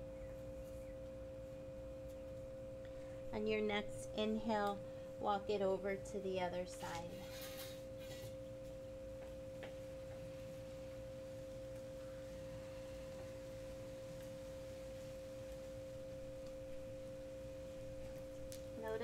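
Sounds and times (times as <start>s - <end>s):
steady pure drone tone: 0.0s - 19.0s.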